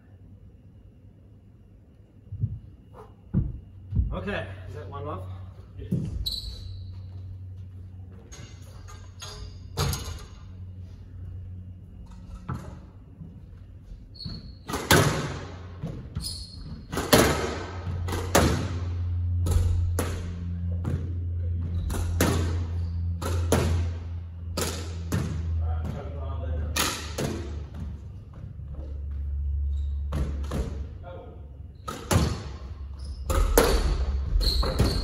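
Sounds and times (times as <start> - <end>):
steady low hum: 0.0 - 35.0
squash ball echoing knocks: 16.9 - 26.1, 31.9 - 32.7, 33.3 - 35.0.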